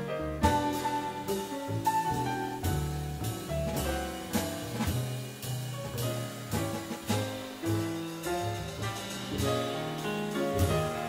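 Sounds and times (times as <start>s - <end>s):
drums played with sticks: 0.0s - 11.0s
piano notes: 0.0s - 11.0s
upright bass walking: 0.0s - 11.0s
cymbal strikes: 6.7s - 10.8s.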